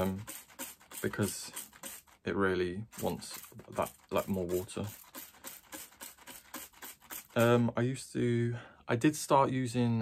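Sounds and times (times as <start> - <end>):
spray bottle hissing: 0.0 - 2.2, 3.0 - 7.6.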